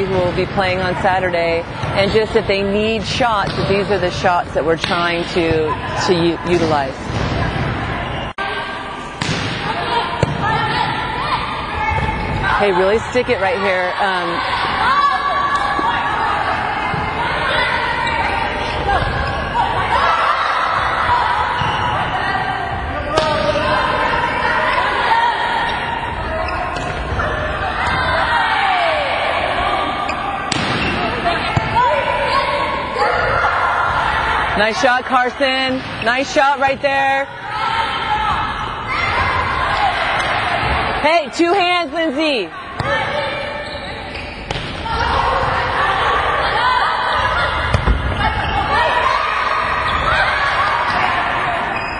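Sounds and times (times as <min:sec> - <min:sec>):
players calling and chatting: 0:00.0 - 0:51.9
volleyball smack: 0:09.2 - 0:10.4, 0:47.7 - 0:48.1
volleyball slaps: 0:09.2 - 0:10.8, 0:23.1 - 0:23.7, 0:30.5 - 0:31.9, 0:44.4 - 0:45.1, 0:47.6 - 0:48.3.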